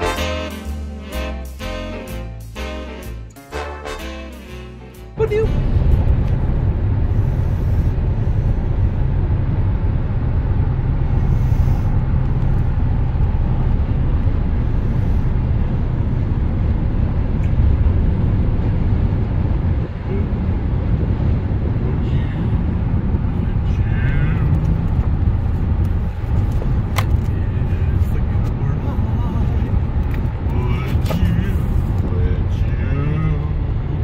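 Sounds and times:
car road and engine rumble: 0:00.0 - 0:34.0.

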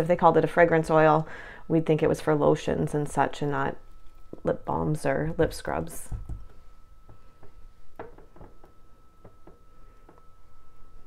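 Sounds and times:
spatula knocking against glass: 0:07.1 - 0:10.3.

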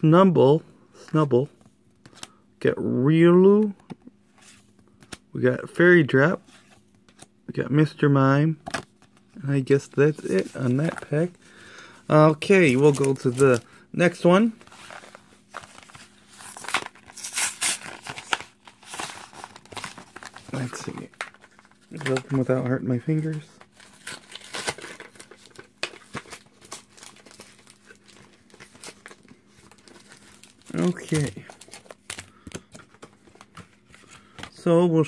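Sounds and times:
plastic packaging crinkling: 0:12.4 - 0:13.6, 0:14.5 - 0:33.5.

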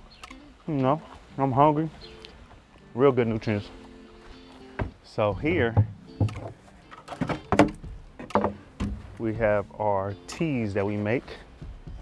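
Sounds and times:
plastic barrel lid knocks and scrapes: 0:04.8 - 0:09.2.

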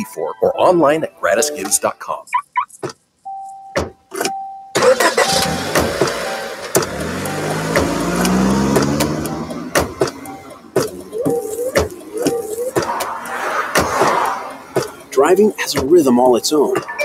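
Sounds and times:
broken warning tone: 0:03.4 - 0:13.4
car engine starting and revving: 0:04.8 - 0:15.9
sharp clicks and knocks: 0:07.7 - 0:13.1.

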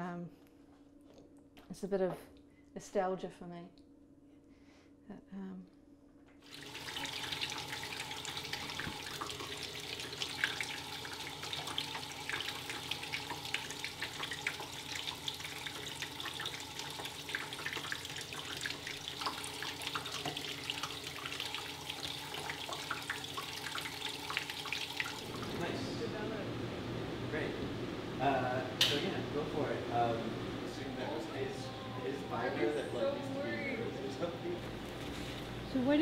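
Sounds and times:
water running into sink: 0:06.4 - 0:26.3.

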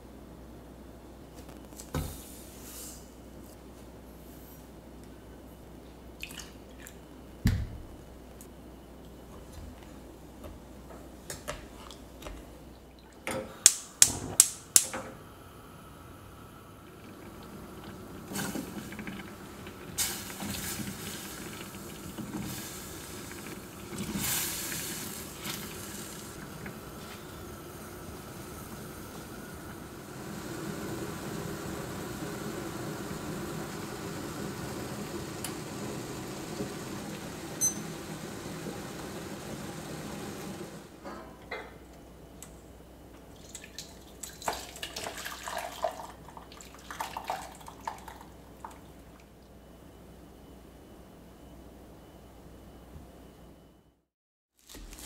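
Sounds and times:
sauce boiling in a saucepan: 0:15.8 - 0:40.9, 0:43.4 - 0:49.4.

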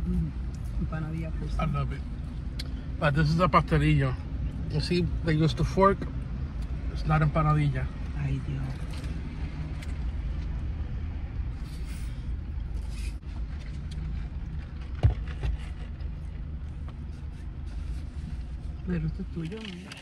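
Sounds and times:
car idling: 0:00.0 - 0:20.0.

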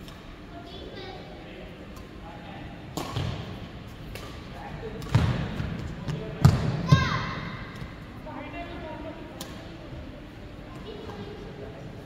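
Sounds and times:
racket striking shuttlecock: 0:02.9 - 0:03.5.

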